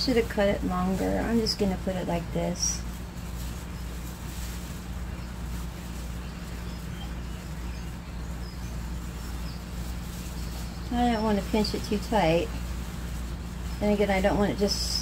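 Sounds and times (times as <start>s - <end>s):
rustling of dry moss: 0.0s - 15.0s
steady low hum: 0.0s - 15.0s.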